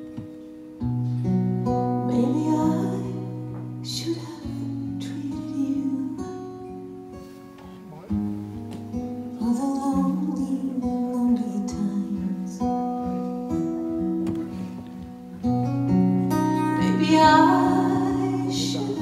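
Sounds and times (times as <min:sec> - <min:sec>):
acoustic guitar chords: 0:00.0 - 0:19.0
person singing: 0:02.0 - 0:06.5, 0:09.4 - 0:13.0, 0:16.6 - 0:19.0.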